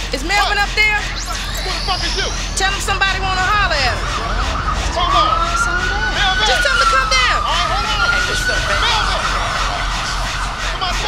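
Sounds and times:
siren wailing: 0:00.0 - 0:11.0
voices: 0:00.0 - 0:11.0.

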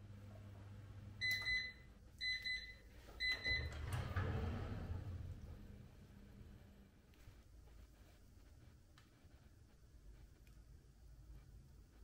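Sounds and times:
oven timer beeping: 0:01.2 - 0:04.0.

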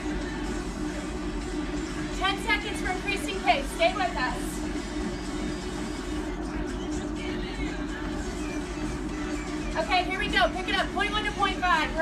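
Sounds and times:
background music: 0:00.0 - 0:12.0
treadmills humming: 0:00.0 - 0:12.0.

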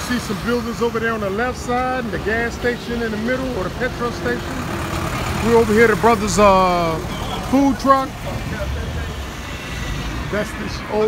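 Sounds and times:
faint voices: 0:00.0 - 0:11.0
road traffic rumble: 0:00.0 - 0:11.0.

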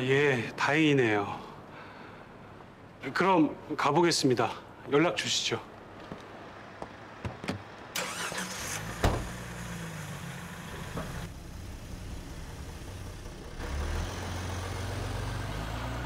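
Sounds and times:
car door shutting: 0:07.2 - 0:09.5.

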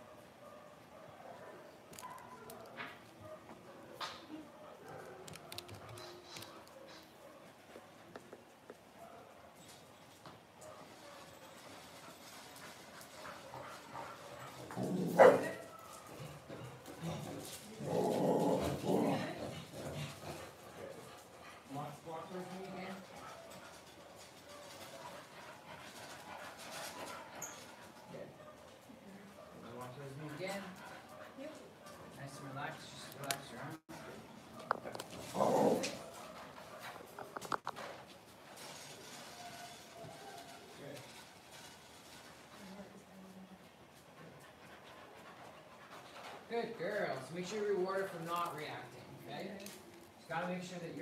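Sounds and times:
dog barking: 0:00.0 - 0:08.0, 0:09.0 - 0:09.6, 0:10.6 - 0:11.4, 0:15.1 - 0:16.4, 0:23.2 - 0:25.2, 0:31.1 - 0:32.5.

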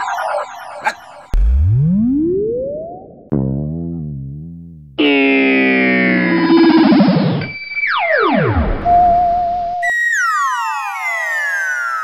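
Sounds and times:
synthesized falling pitch glides: 0:00.0 - 0:09.2.

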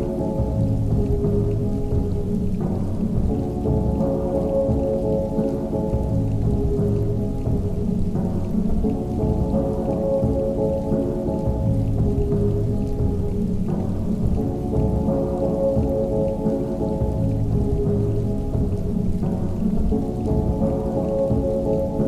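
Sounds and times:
muffled music: 0:00.0 - 0:22.0
steady rain: 0:00.0 - 0:22.0.

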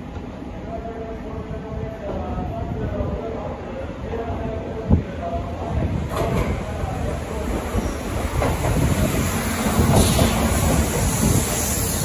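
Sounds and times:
electric train passing: 0:06.7 - 0:12.0
train wheel clacks: 0:07.5 - 0:12.0.

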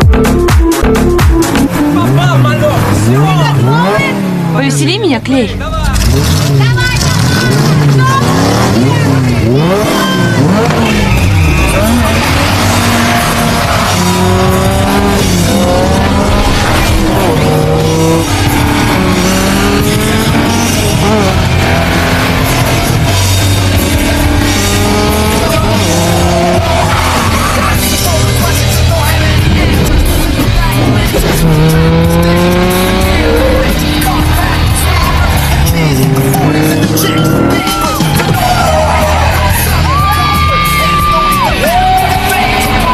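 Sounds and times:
loud film music: 0:00.0 - 0:42.9
car engine revving hard: 0:01.4 - 0:42.9
tyres spinning and squealing: 0:05.8 - 0:42.9.

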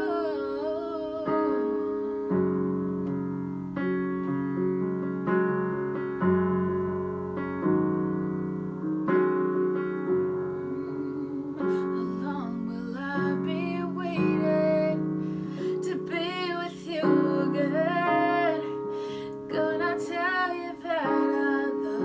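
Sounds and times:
piano slow sustained chords: 0:00.0 - 0:22.0.

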